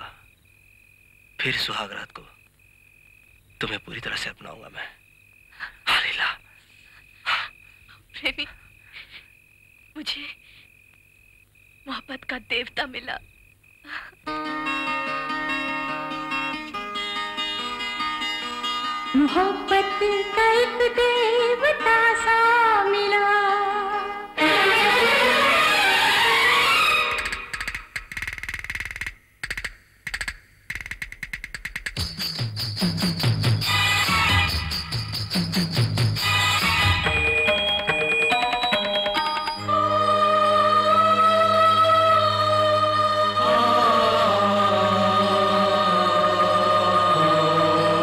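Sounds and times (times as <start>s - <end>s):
insect drone: 0.0s - 48.0s.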